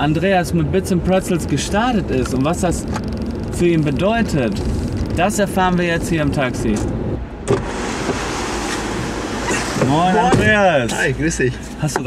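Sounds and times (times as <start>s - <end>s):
street and traffic noise: 0.0s - 12.0s
car door opening click: 6.8s - 10.6s.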